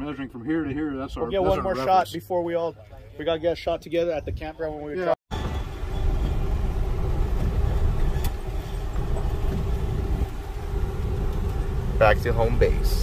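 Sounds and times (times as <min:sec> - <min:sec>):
vehicle engine and tyres rumbling: 0:05.3 - 0:13.0.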